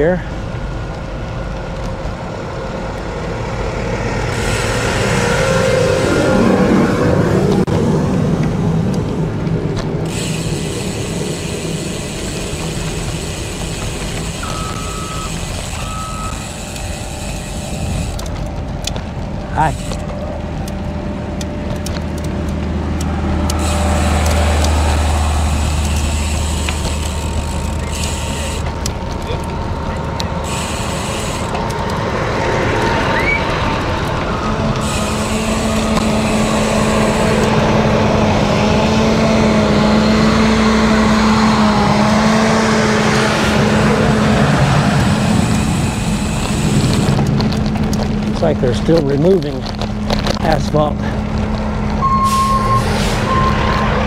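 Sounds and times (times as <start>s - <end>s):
deep engine drone: 0.0s - 54.0s
heavy diesel machinery running: 0.0s - 54.0s
short electronic beeps: 14.4s - 16.5s, 52.0s - 53.8s.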